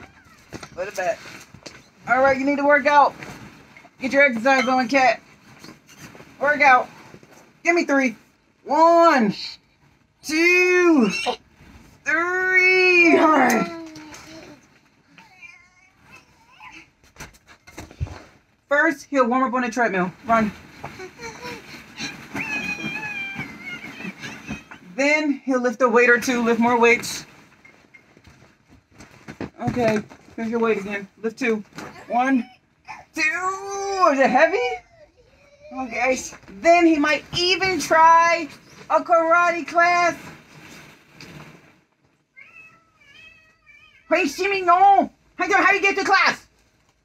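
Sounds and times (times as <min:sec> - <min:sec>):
child's high-pitched squeal: 0:22.4 - 0:24.6.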